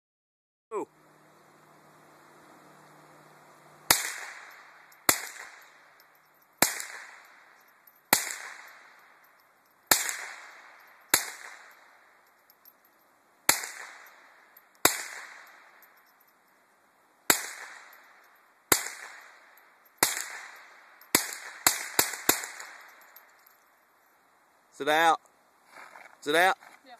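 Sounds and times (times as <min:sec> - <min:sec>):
rifle shots echoing: 0:03.9 - 0:05.8, 0:06.6 - 0:07.3, 0:08.1 - 0:08.9, 0:09.9 - 0:11.8, 0:13.5 - 0:14.1, 0:14.8 - 0:15.5, 0:18.7 - 0:19.3, 0:20.0 - 0:23.0.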